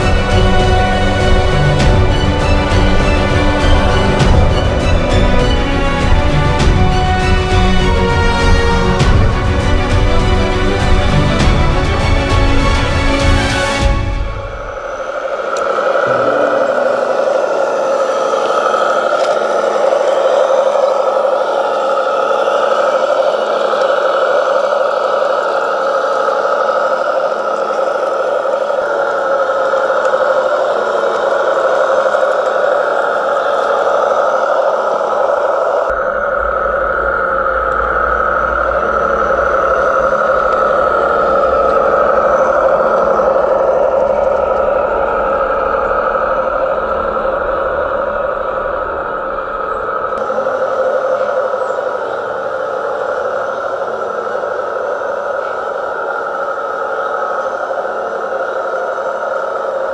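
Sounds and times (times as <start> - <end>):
low rumble: 14.0 - 20.3.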